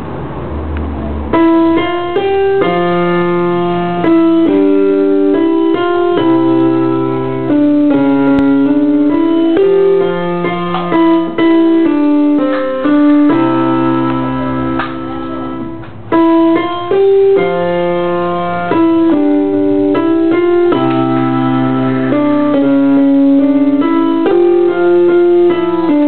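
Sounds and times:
slow piano tune: 0.0s - 26.0s.

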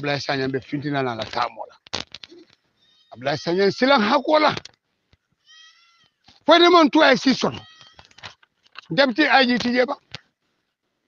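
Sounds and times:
person speaking: 0.0s - 2.4s, 8.8s - 10.1s.

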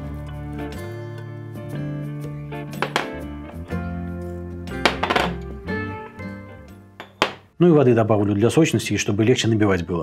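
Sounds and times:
background music with held notes: 0.0s - 7.3s.

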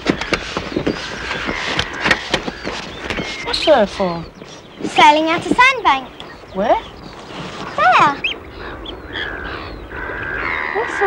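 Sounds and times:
bird whistled call: 2.5s - 4.7s.

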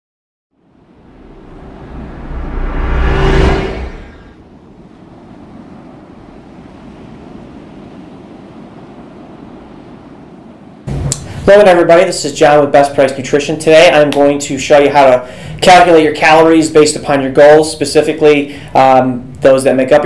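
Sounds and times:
steady drone: 0.6s - 5.5s, 10.9s - 14.0s
whoosh: 0.8s - 5.2s, 10.9s - 12.4s.

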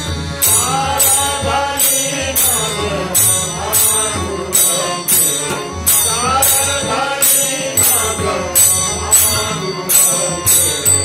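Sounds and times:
bright struck beat: 0.0s - 11.0s
chant-like singing: 0.0s - 11.0s
harmonium: 0.0s - 11.0s
tabla: 0.0s - 11.0s.

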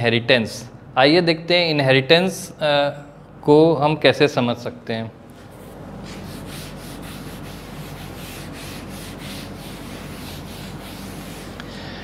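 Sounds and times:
eraser rubbing on chalkboard: 5.6s - 11.6s.

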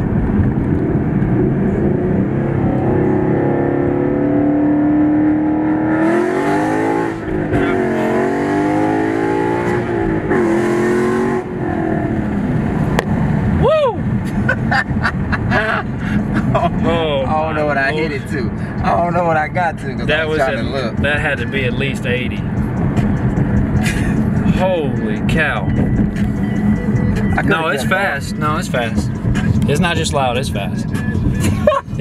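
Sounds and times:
car engine accelerating: 0.0s - 32.0s.

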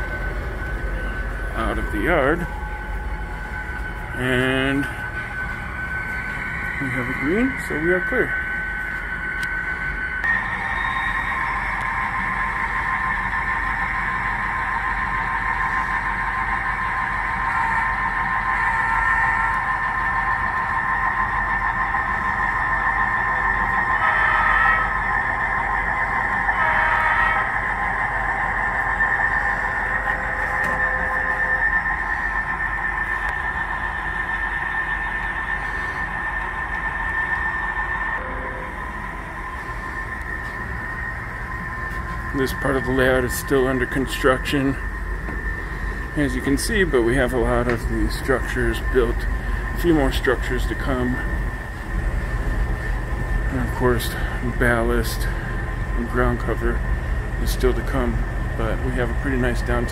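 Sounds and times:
model locomotive engine drone: 0.0s - 59.9s.

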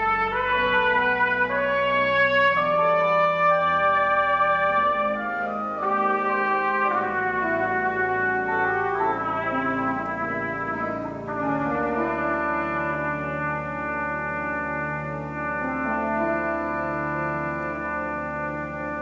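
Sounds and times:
organ chords and pedal notes: 0.0s - 19.0s
trumpet melody: 0.0s - 19.0s.

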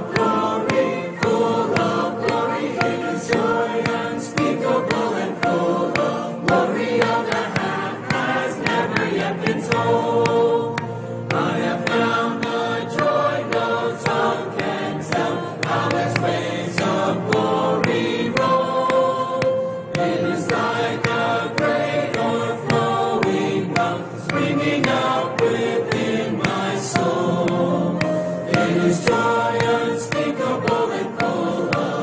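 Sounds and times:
group singing gospel hymn: 0.0s - 32.0s.

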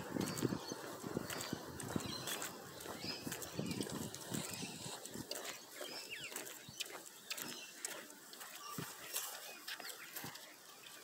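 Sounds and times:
footsteps: 0.0s - 11.0s
bird chirps: 0.2s - 10.2s.

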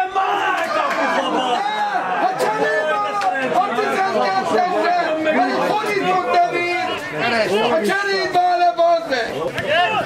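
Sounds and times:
voices shouting and chattering: 0.0s - 10.0s.

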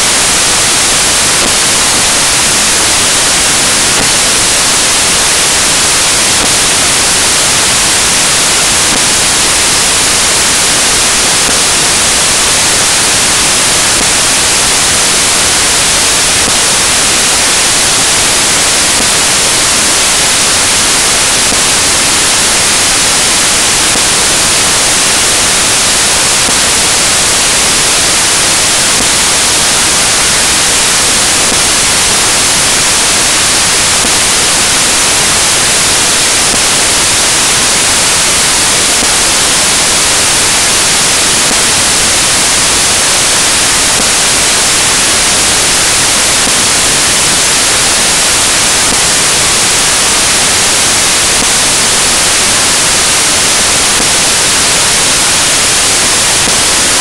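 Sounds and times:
loud static hiss: 0.0s - 57.0s.

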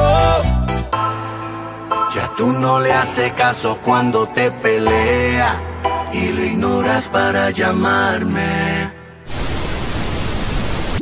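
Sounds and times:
static hiss: 9.3s - 11.0s.

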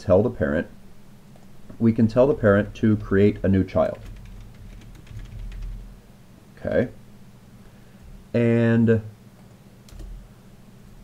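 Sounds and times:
keyboard typing: 2.5s - 5.9s, 9.9s - 10.2s.

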